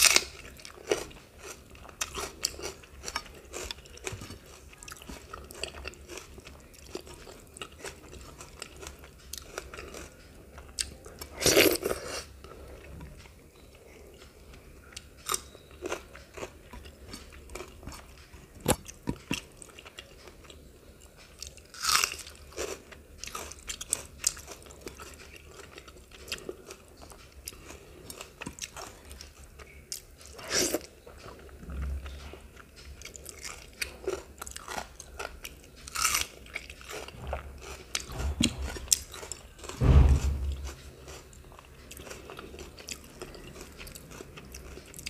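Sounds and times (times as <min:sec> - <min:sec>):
person chewing food: 0:00.0 - 0:45.0.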